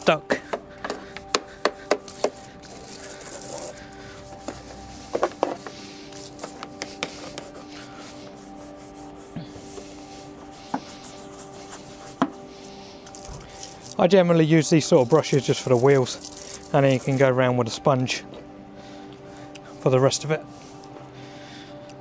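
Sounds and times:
background music: 0.0s - 22.0s
brush scrubbing motorbike: 0.3s - 18.3s
brush knocking against bike: 0.4s - 2.5s, 4.4s - 5.8s, 12.1s - 12.4s.

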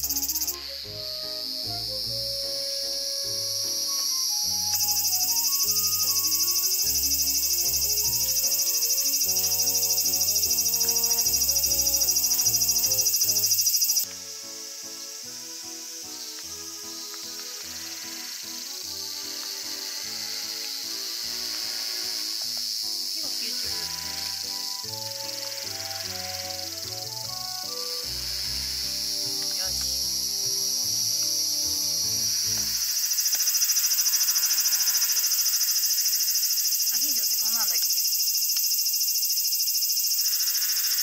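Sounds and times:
insects shrilling: 0.0s - 41.0s.

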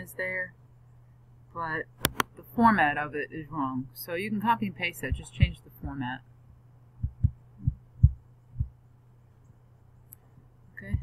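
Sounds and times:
faint low hum: 0.0s - 11.0s
dull low thumps: 5.0s - 8.8s, 10.8s - 11.0s.

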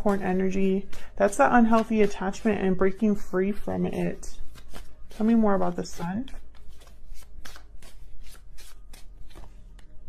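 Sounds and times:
cards shuffled by hand: 4.4s - 9.9s.

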